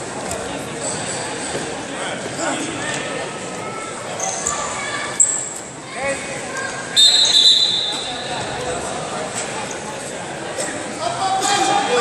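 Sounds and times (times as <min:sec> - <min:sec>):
voices echoing in a hall: 0:00.0 - 0:12.0
referee's whistle blast: 0:07.0 - 0:08.3.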